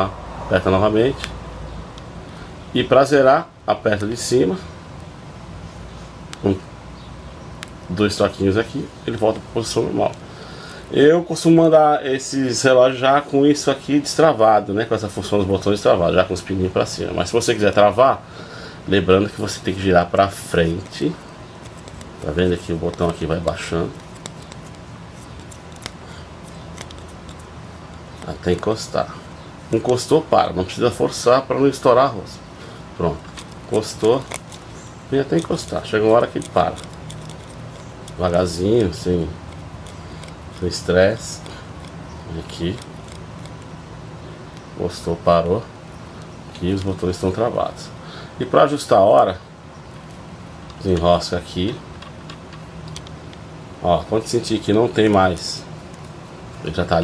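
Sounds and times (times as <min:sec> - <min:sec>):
steady low hum: 0:00.0 - 0:57.0
watch pusher lock clicking: 0:35.4 - 0:41.2.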